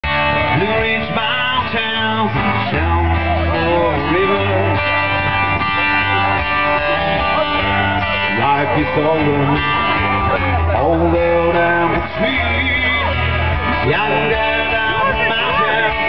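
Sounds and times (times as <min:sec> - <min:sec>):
man singing: 0:00.0 - 0:06.1, 0:06.8 - 0:16.0
country band playing live: 0:00.0 - 0:16.0
strummed acoustic guitar: 0:00.0 - 0:16.0.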